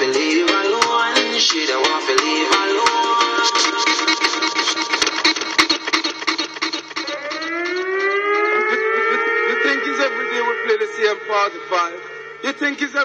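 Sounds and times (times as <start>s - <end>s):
dancehall riddim with sharp percussion: 0.0s - 10.6s
siren effect rising in pitch: 6.4s - 13.0s.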